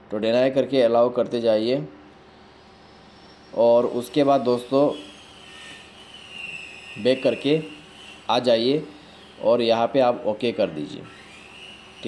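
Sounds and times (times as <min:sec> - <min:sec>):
thin high-pitched whine: 0:02.1 - 0:12.0.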